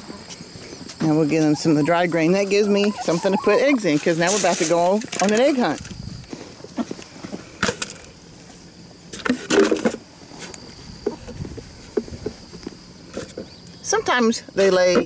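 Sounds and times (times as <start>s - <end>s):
footsteps: 0.0s - 7.7s, 8.4s - 13.5s
plastic bucket knocks and rustles: 9.2s - 10.0s.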